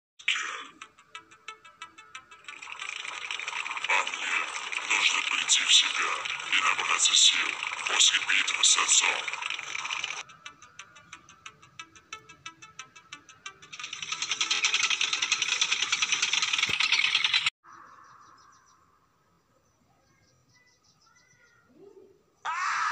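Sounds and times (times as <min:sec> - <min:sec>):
background music: 0:00.2 - 0:16.4
rapid mechanical rattle: 0:02.4 - 0:10.2, 0:13.4 - 0:17.5
sharp clicks: 0:02.4 - 0:10.2, 0:13.7 - 0:17.5.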